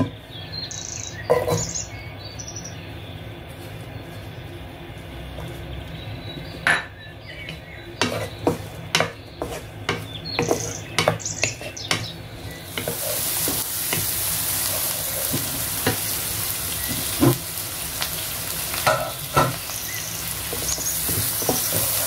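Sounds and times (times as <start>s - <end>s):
onions sizzling in hot oil: 0.0s - 2.7s, 5.0s - 22.0s
wooden spatula scraping pan: 1.3s - 1.8s, 7.5s - 16.1s, 20.3s - 22.0s.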